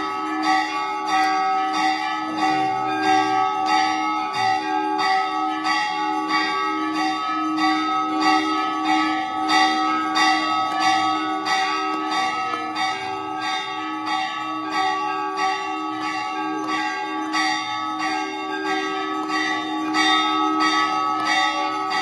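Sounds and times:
temple bells ringing: 0.0s - 22.0s.

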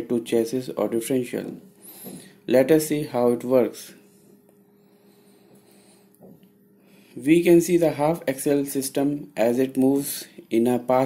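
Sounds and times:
faint low hum: 0.0s - 11.0s
soft breath: 1.7s - 2.5s, 4.0s - 7.2s.

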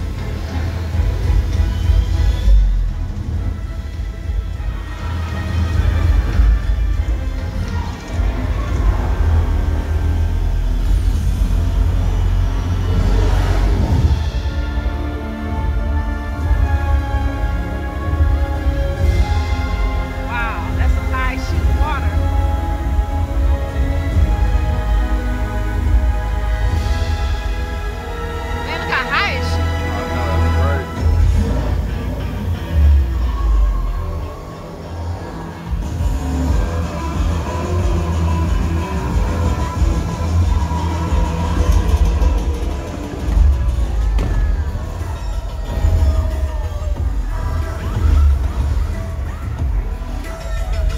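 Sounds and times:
deep rumbling bass over loudspeakers: 0.0s - 50.9s
faint music: 0.0s - 50.9s.

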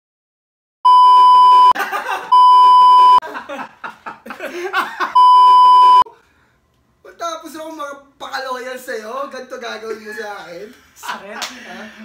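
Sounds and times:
censor bleep: 0.9s - 1.8s, 2.4s - 3.2s, 5.2s - 6.0s.

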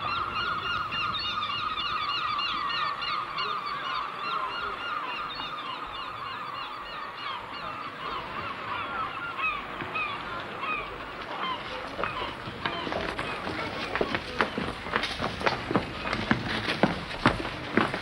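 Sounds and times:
gulls calling: 0.0s - 18.0s.

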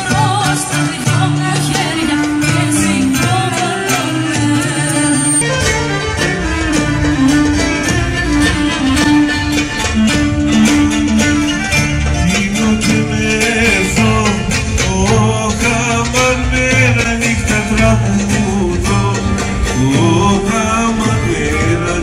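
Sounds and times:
folk dance music on strings: 0.0s - 22.0s.

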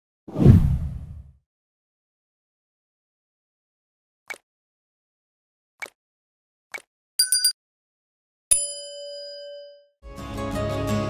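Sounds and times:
deep swoosh: 0.3s - 1.3s.

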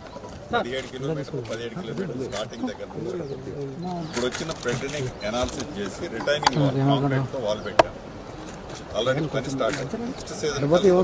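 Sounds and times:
men talking: 0.5s - 11.0s.

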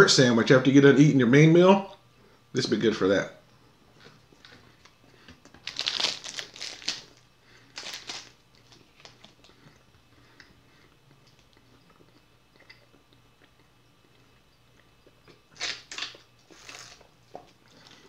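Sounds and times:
plastic wrapper crinkling: 5.5s - 9.5s.

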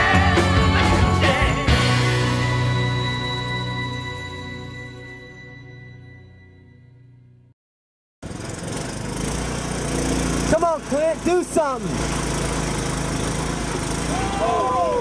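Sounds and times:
small engine running: 8.2s - 15.0s
spectators yelling and whooping: 14.0s - 15.0s.

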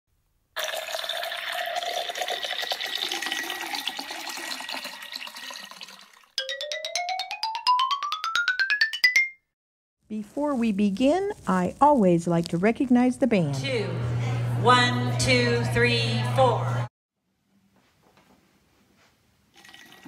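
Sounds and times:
wine pouring into glass: 0.6s - 6.4s, 19.5s - 20.0s.

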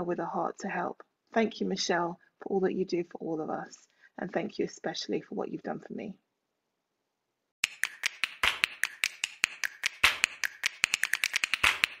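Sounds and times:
rapid sharp dry clicks: 7.6s - 12.0s.

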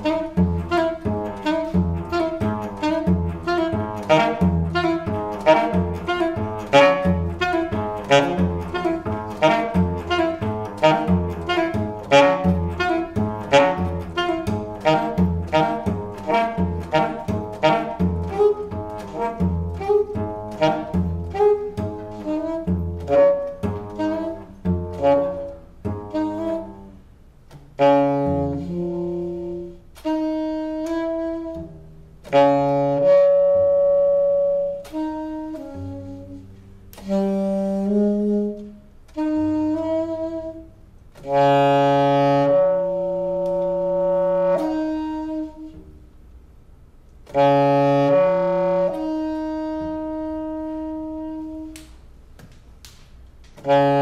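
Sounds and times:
cello: 0.0s - 46.0s
alto saxophone: 0.0s - 52.2s, 53.2s - 54.0s.

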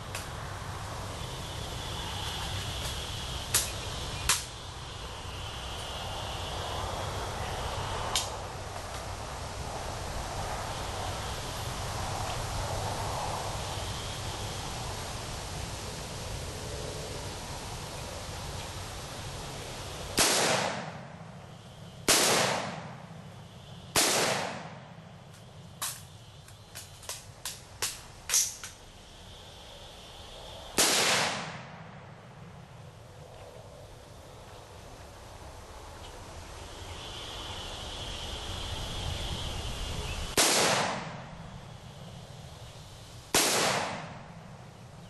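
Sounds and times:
rifle shots with echo: 20.2s - 20.9s, 22.1s - 22.9s, 24.0s - 24.7s, 40.4s - 41.1s, 43.4s - 44.2s.

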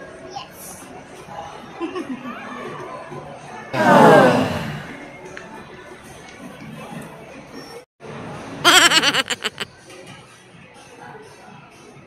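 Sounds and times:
indoor crowd hubbub: 0.0s - 12.0s
person laughing loudly: 8.6s - 9.6s.

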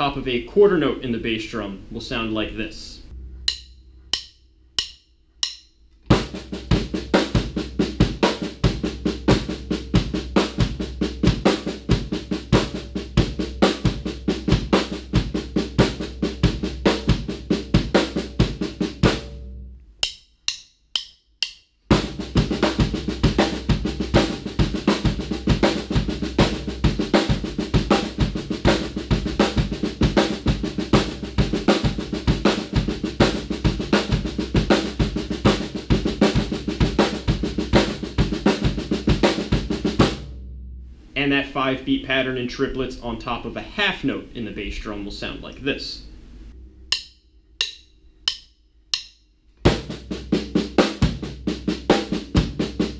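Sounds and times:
bass drum: 3.1s - 19.8s, 21.9s - 41.3s, 49.7s - 52.9s
snare drum: 21.9s - 40.3s.

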